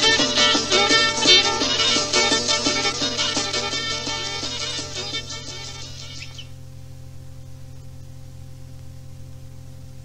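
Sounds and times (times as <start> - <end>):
folk song: 0.0 - 6.5
low hum with faint hiss: 0.0 - 10.0.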